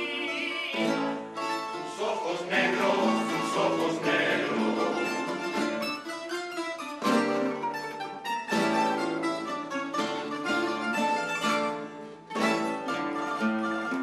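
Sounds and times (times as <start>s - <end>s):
acoustic guitars and plucked strings: 0.0s - 14.0s.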